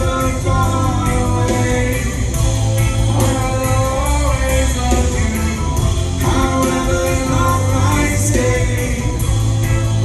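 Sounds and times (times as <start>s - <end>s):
live band playing through pa: 0.0s - 10.0s.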